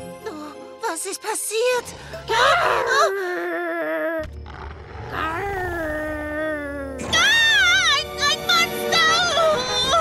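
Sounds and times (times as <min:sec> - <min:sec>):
cartoon dinosaur howl: 0:02.3 - 0:04.3.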